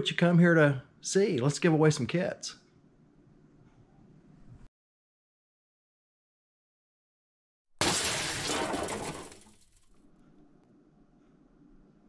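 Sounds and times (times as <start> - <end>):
glass shattering: 7.8 - 9.9.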